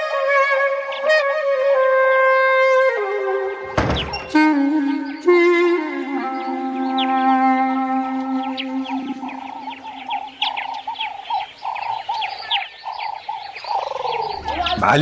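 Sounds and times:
birds chirping: 1.9s - 15.0s
quick repeated bird call: 13.7s - 14.8s.

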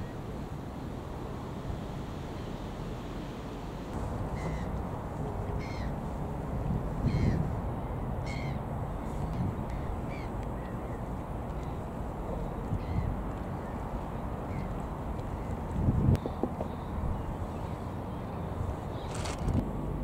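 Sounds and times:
low rush: 0.0s - 20.0s
gulls calling: 4.0s - 19.3s.

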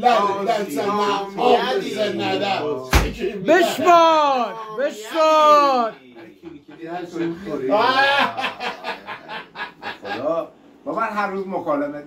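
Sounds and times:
man laughing: 6.2s - 10.4s.

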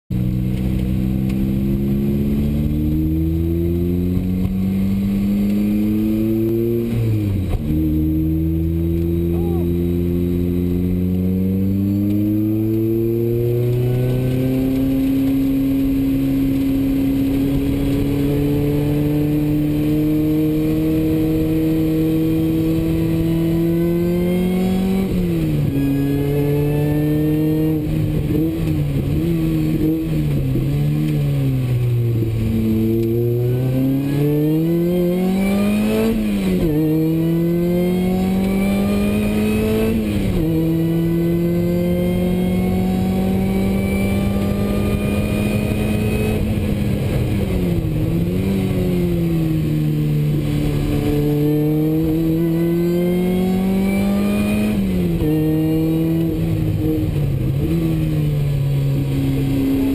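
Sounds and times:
car engine accelerating: 0.1s - 59.9s.

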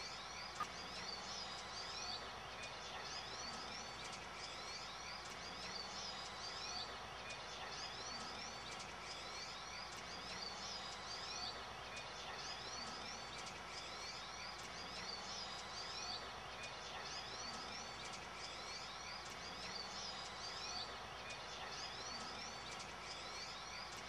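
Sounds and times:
small bird chirping: 0.0s - 24.0s.

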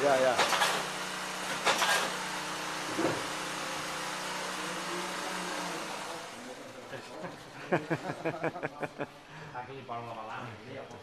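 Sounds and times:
workshop machinery humming: 0.0s - 9.5s.

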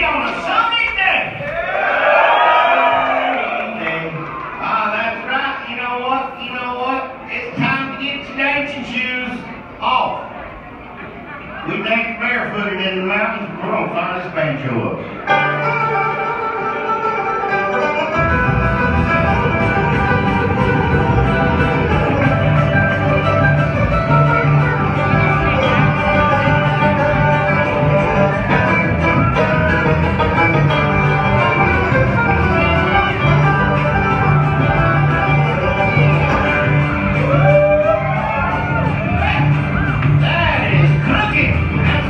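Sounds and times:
fast banjo picking: 15.3s - 42.0s
upright bass: 15.3s - 42.0s.

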